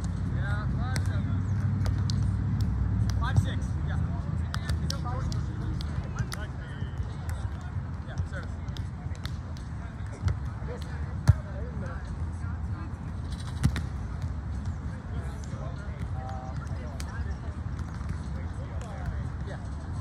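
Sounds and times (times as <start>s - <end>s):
distant voices of players: 0.1s - 20.0s
hand slapping a volleyball: 1.0s - 3.5s, 4.5s - 11.4s.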